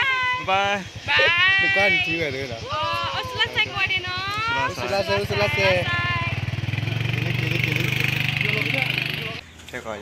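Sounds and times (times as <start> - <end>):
small motorcycle engine running: 0.0 - 9.4.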